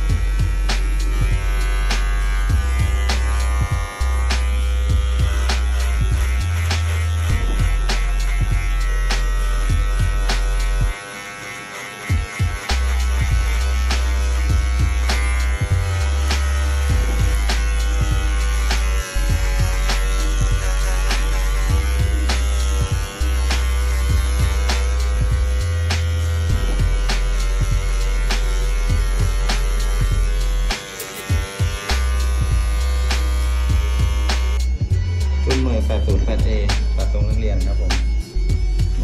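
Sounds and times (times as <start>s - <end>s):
music with heavy bass beat: 0.0s - 11.0s, 12.1s - 39.0s
hair clipper buzzing: 0.0s - 39.0s.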